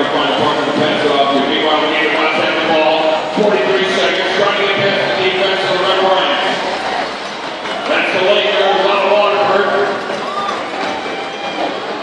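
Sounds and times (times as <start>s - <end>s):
man speaking over public address: 0.0s - 6.8s, 7.8s - 10.3s
steady background din: 0.0s - 12.0s.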